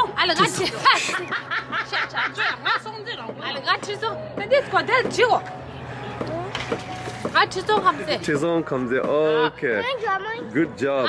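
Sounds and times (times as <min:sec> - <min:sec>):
woman laughing: 0:00.4 - 0:03.0.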